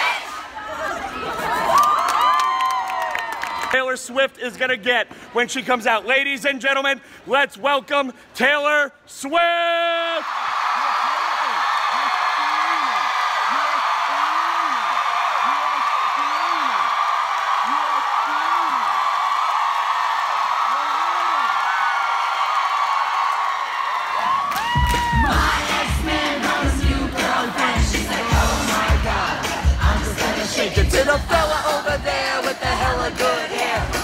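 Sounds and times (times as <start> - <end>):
crowd screaming and cheering: 0.0 - 3.7, 10.1 - 31.2
individual whoops: 1.7 - 3.7, 10.1 - 19.8, 20.6 - 25.4
amplified pop music with heavy beat: 24.7 - 34.0.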